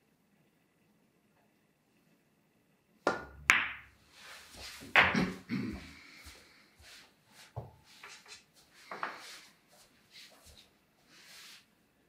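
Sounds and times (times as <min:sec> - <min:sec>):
cue tip striking cue ball: 0:03.1 - 0:03.9.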